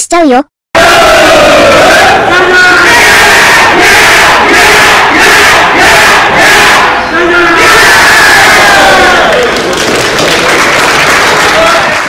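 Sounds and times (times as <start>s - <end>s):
team shouting rhythmic yell: 0.8s - 9.5s.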